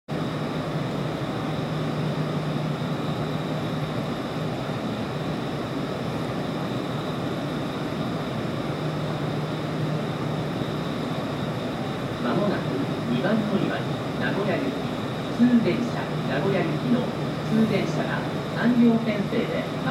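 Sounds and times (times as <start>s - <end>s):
station platform background hum: 0.1s - 19.9s.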